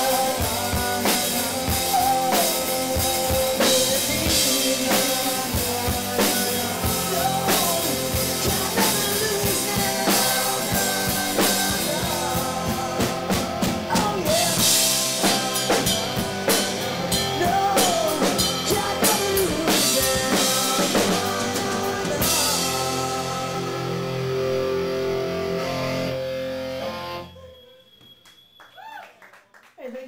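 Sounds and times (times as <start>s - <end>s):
live rock band playing: 0.0s - 27.4s.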